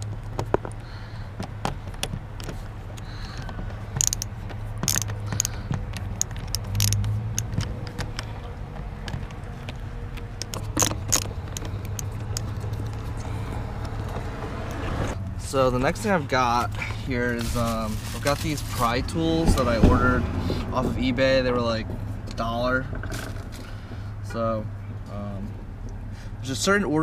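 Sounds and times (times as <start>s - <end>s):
low hum: 0.0s - 18.2s
screwdriver clicking on screws: 4.0s - 8.3s.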